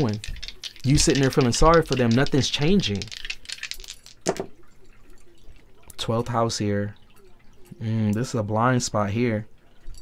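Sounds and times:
dice clicking on a table: 0.0 - 4.5
dice knocking on a table: 0.0 - 4.6.

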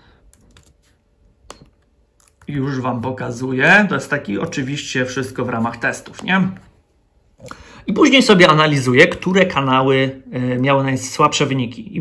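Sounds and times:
laptop keyboard keystrokes: 0.3 - 2.5.

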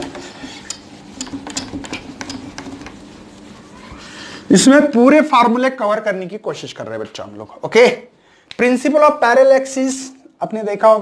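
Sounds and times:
duster scrubbing whiteboard: 0.0 - 5.5.

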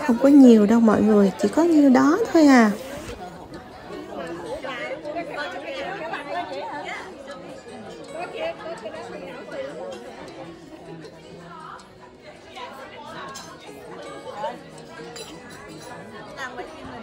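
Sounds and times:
women chatting: 0.0 - 3.3
soft music: 0.0 - 17.0.

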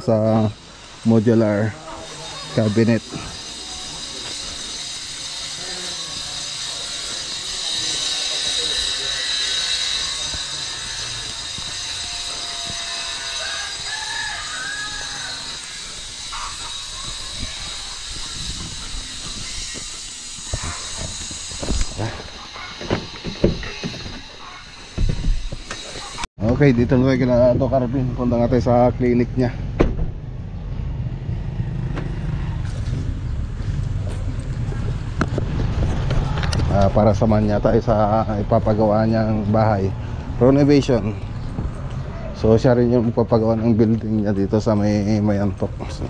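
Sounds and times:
steady high-pitched outdoor hiss: 0.0 - 28.9.

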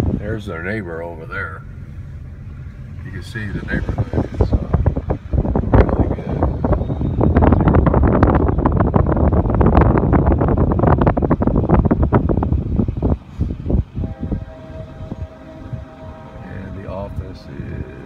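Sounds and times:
car road noise: 0.0 - 18.0
wind buffeting microphone: 0.0 - 18.0.

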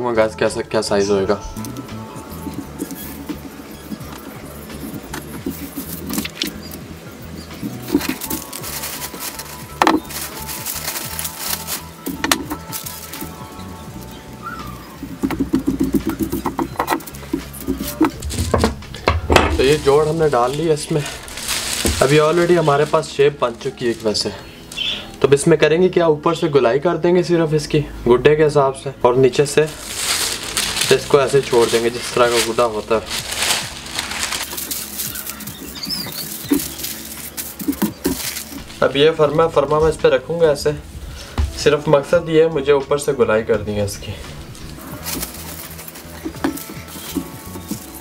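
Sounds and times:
thin paper rustling: 1.6 - 25.2, 29.5 - 40.0, 44.2 - 48.0
man speaking: 19.5 - 21.2.

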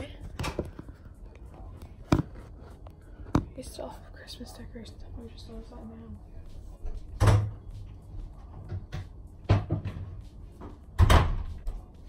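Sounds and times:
door thumping shut: 11.0 - 11.5.

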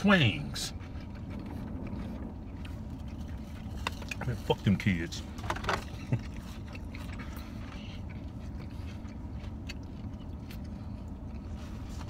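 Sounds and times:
car idling rumble: 0.0 - 12.0.

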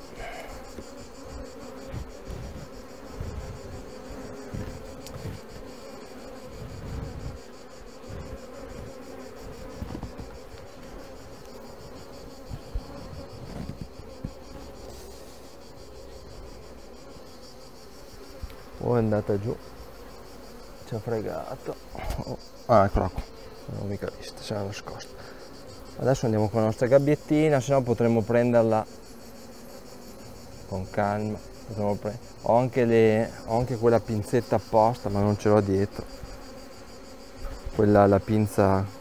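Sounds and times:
bees buzzing: 0.0 - 39.0.

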